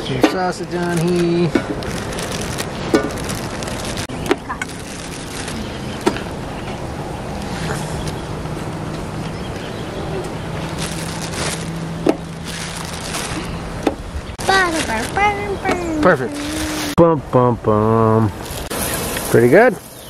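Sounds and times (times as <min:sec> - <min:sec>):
food sizzling on a griddle: 0:18.5 - 0:20.0.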